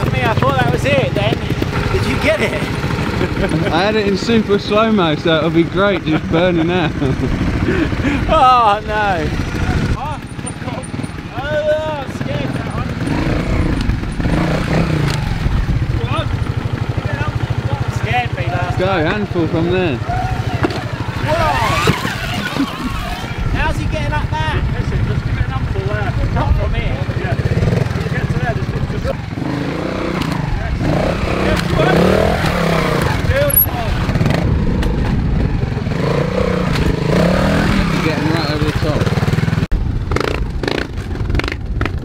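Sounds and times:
motorcycle engine revving: 0.0s - 42.0s.

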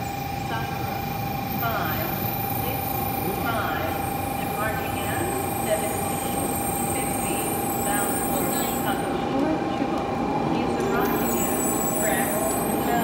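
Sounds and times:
steady high hum: 0.0s - 13.0s
train rumble: 0.0s - 13.0s.

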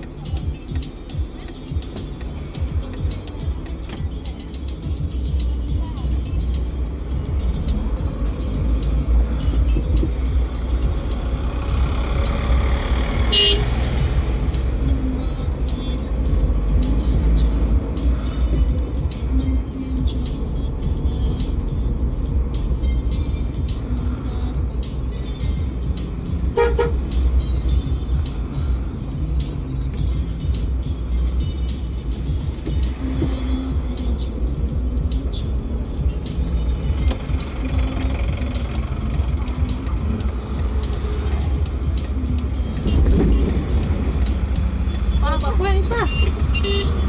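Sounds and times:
car cabin road and engine noise: 0.0s - 47.0s
car horn toot: 13.3s - 13.8s, 26.5s - 27.0s, 42.8s - 43.6s, 45.9s - 47.0s.

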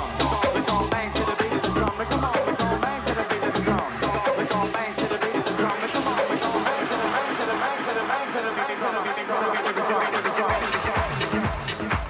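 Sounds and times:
house music: 0.0s - 12.0s
voice over music: 0.0s - 12.0s.

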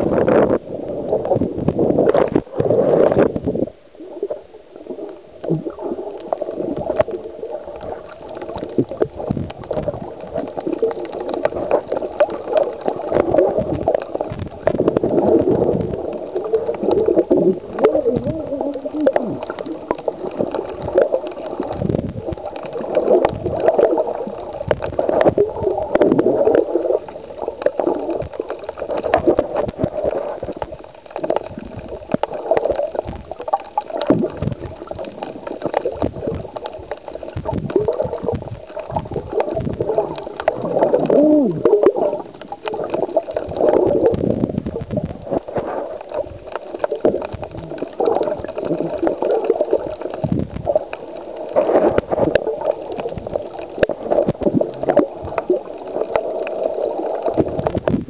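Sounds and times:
water gurgling underwater: 0.0s - 58.0s.

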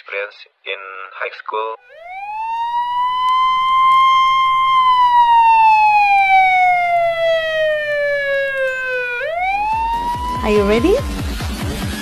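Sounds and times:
siren wailing: 1.9s - 11.4s.

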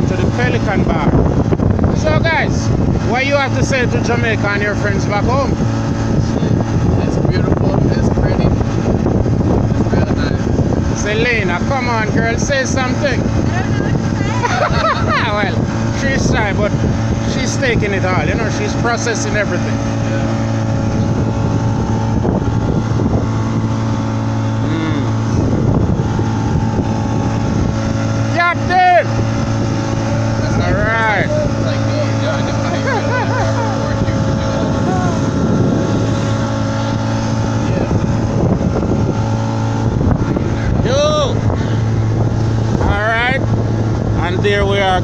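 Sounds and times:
motorboat engine running: 0.0s - 45.0s
water rushing past hull: 0.0s - 45.0s.

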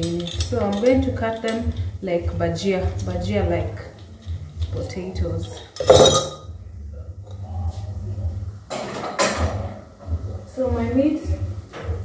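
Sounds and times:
utensils clinking: 0.0s - 1.9s, 3.9s - 6.5s
low steady hum: 0.0s - 8.7s.

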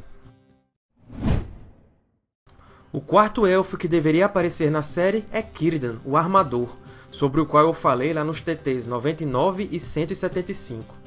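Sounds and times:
whoosh transition effect: 1.0s - 1.9s.

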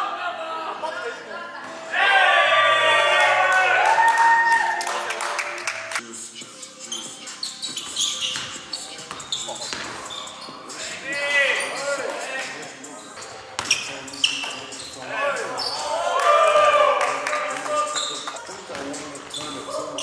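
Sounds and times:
sneakers squeaking: 6.6s - 16.0s, 17.8s - 20.0s
basketball bouncing: 8.3s - 10.1s.

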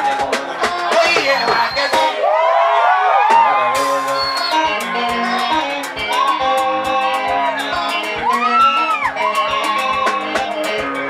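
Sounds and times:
live band playing: 0.0s - 2.3s, 3.1s - 11.0s
crowd cheering and whooping: 0.0s - 11.0s.

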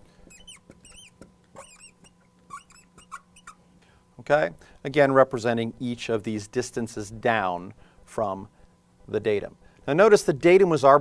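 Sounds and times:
marker squeaking on glass: 0.2s - 3.6s.

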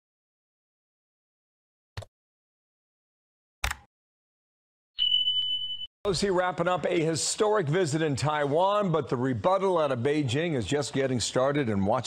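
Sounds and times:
high-pitched electronic beep: 5.0s - 5.9s.

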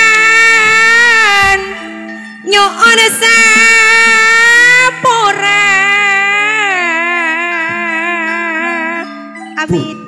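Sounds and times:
low gamelan notes: 0.0s - 10.0s.

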